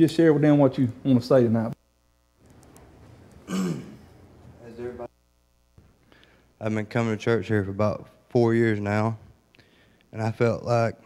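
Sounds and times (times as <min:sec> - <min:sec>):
low room hum: 0:00.0 - 0:11.0
man clearing his throat: 0:03.4 - 0:04.1.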